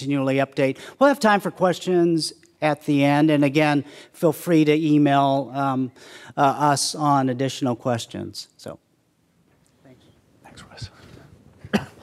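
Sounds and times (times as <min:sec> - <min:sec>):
faint whispering: 0:09.8 - 0:11.4.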